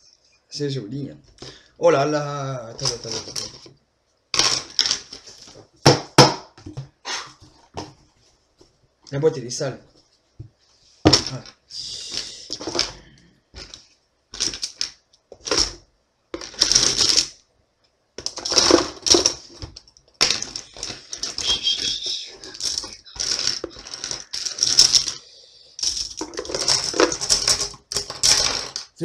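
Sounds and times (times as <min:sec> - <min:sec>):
plastic pens rattling in a box: 0:02.8 - 0:03.7, 0:13.6 - 0:13.8, 0:14.4 - 0:15.8, 0:16.4 - 0:17.3, 0:18.2 - 0:25.2, 0:25.8 - 0:29.0.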